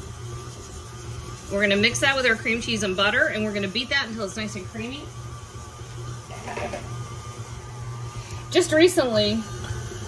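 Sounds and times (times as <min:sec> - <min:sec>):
stand mixer motor humming: 0:00.0 - 0:10.0.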